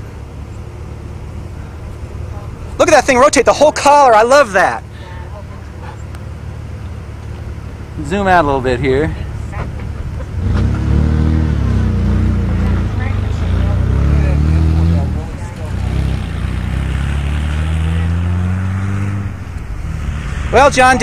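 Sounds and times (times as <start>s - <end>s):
vehicle engine accelerating: 6.1s - 21.0s.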